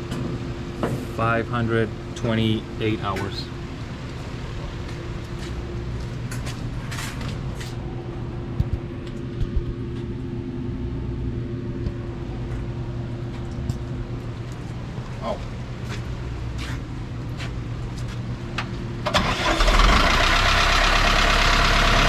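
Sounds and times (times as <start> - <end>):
diesel engine running: 0.0 - 22.0.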